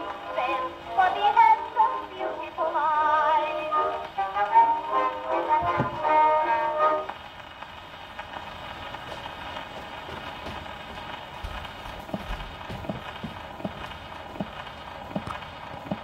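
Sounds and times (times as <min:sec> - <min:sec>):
record surface hiss: 0:00.0 - 0:16.0.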